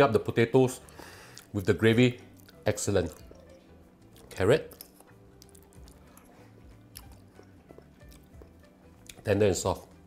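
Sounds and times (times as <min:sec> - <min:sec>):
faint background music: 0:00.0 - 0:10.0
quiet chewing: 0:00.9 - 0:01.6, 0:02.2 - 0:09.2.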